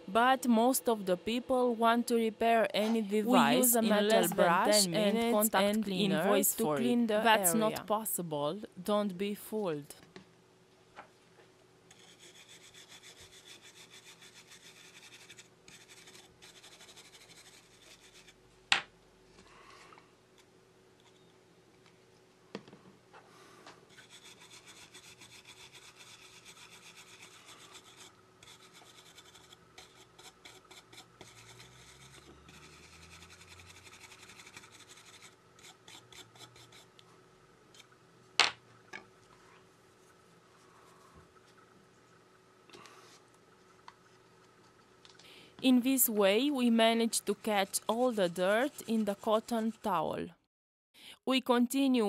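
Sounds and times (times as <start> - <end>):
wire brush scrubbing circuit board: 23.9 - 36.9, 46.0 - 50.0.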